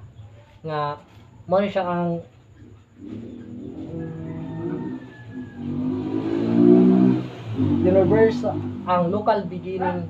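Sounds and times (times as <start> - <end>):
vehicle engine: 2.8 - 10.0.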